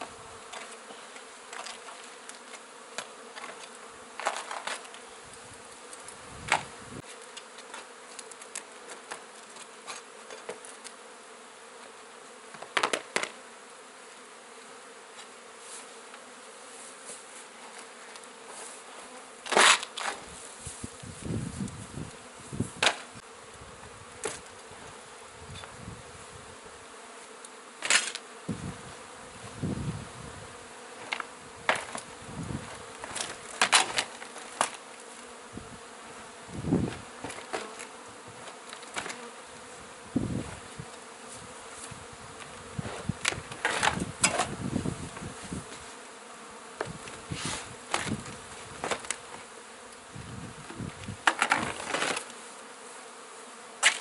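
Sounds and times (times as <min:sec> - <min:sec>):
honeybees buzzing: 0:00.0 - 0:54.0
wooden boards being pried off: 0:51.2 - 0:52.2.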